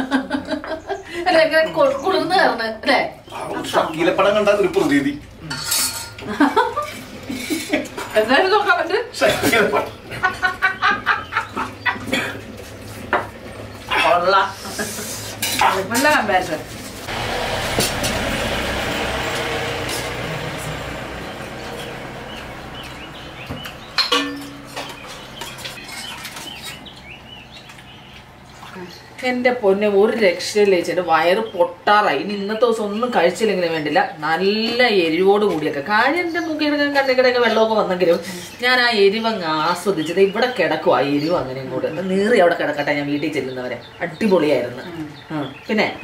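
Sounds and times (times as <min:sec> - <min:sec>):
small birds chirping: 0:00.7 - 0:05.4, 0:20.7 - 0:29.4, 0:36.0 - 0:46.0
metal spoon scraping metal plate: 0:05.5 - 0:06.2
broad rushing noise: 0:16.7 - 0:23.0.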